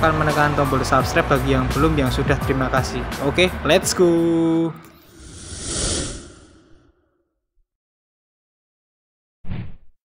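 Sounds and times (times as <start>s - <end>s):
whoosh: 5.0s - 7.1s.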